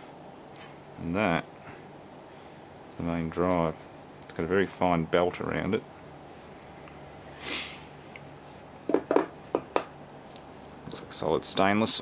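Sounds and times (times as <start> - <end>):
sharp taps on metal: 8.9 - 9.9.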